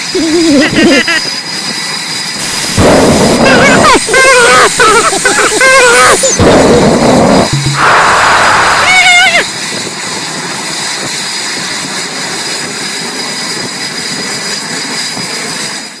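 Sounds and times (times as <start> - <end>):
loud burst of noise: 0.0 - 15.2
jet engine noise: 0.0 - 16.0
thin high whine: 0.0 - 16.0
short wavering cry: 3.4 - 9.5.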